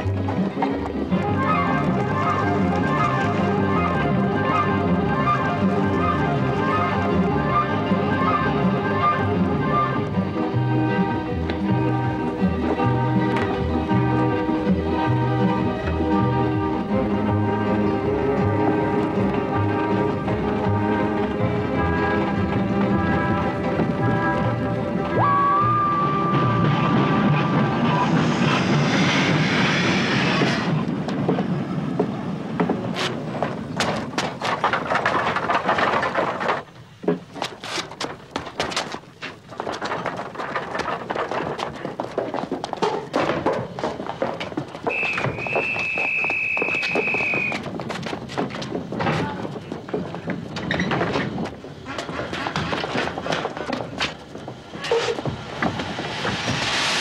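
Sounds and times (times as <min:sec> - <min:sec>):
hissing burst: 0:27.1 - 0:30.9, 0:55.0 - 0:57.0
knocks and thuds: 0:31.0 - 0:56.8
high whistle: 0:44.9 - 0:47.6.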